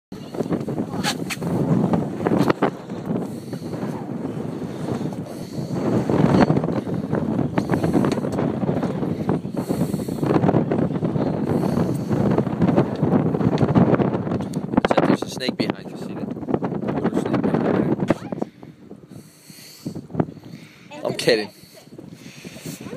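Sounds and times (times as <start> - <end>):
wind buffeting microphone: 0.1 - 22.9.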